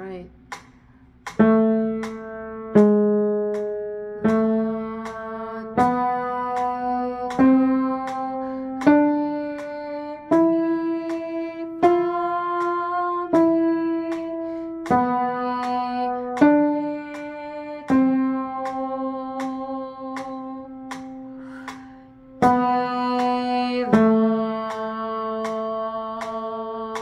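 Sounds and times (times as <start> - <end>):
upright piano played slowly: 1.2 - 27.0.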